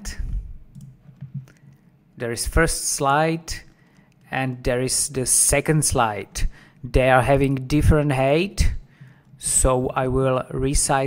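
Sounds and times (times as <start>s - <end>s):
computer mouse clicks: 0.7s - 1.9s, 3.6s - 4.3s.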